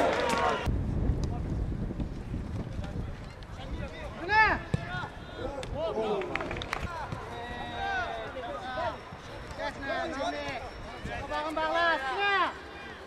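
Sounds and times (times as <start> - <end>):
players shouting calls: 4.1 - 13.0.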